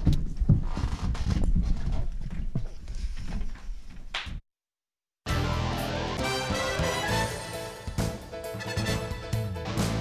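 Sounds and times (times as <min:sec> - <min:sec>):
footsteps: 0:00.0 - 0:04.4.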